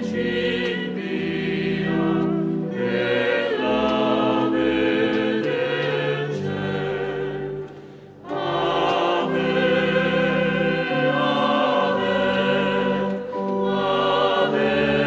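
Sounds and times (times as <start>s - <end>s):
choir singing a hymn: 0.0s - 15.0s.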